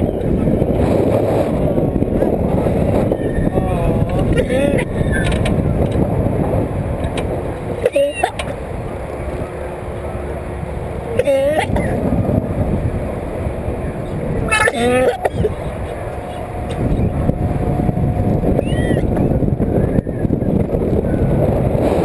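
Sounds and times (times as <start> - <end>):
wind rushing over microphone: 0.0 - 22.0
rider's high wavering cries: 7.8 - 8.6, 14.4 - 17.0, 18.4 - 19.2.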